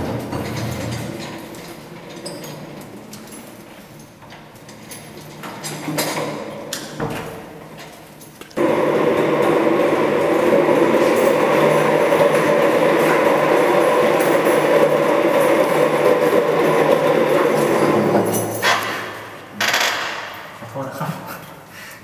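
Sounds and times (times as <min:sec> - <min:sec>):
office chair casters rolling on tiles: 0:00.0 - 0:20.4.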